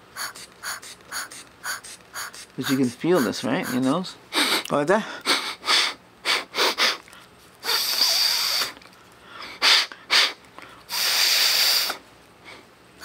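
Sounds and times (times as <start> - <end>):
forceful nose breath: 0.0 - 4.7, 5.3 - 8.8, 9.4 - 12.6
quick nose sniffs: 0.1 - 4.6, 5.7 - 8.8, 9.5 - 12.6.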